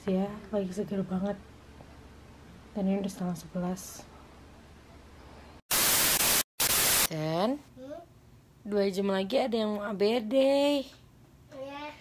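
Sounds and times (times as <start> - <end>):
static hiss burst: 5.7 - 7.1.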